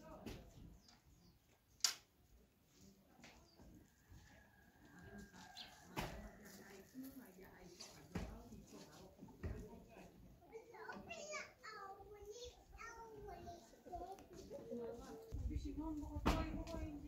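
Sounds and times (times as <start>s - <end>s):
sharp click: 1.8s - 2.0s.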